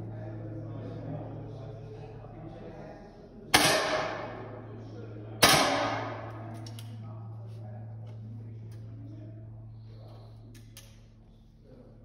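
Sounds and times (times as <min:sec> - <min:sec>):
air rifle shots with echo: 0:03.6 - 0:04.5, 0:05.4 - 0:06.5.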